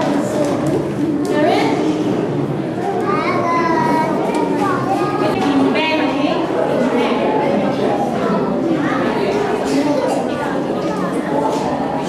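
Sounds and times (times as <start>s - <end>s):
children chattering: 0.0s - 12.0s
high child's voice: 2.8s - 5.4s.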